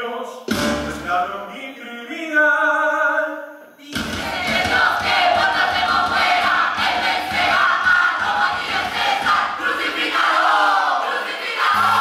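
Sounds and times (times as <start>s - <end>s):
chorus shouting and chanting: 4.0s - 12.0s.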